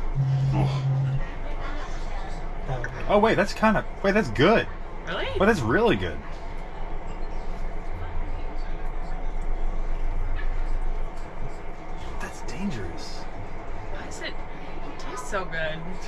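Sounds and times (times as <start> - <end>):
murmured voice: 0.0 - 3.2
train mechanical hum: 0.0 - 16.0.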